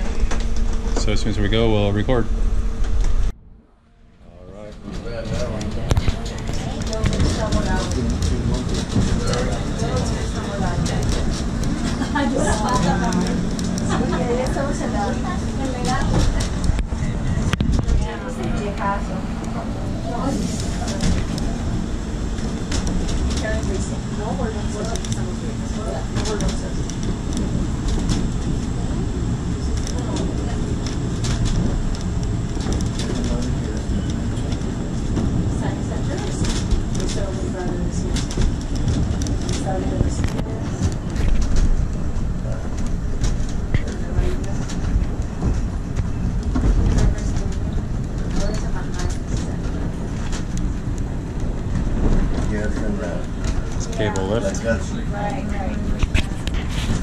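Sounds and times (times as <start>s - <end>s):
cable car low rumble: 0.0s - 57.0s
clicks and rattles of rails: 4.7s - 18.2s, 22.3s - 28.7s, 29.6s - 54.6s.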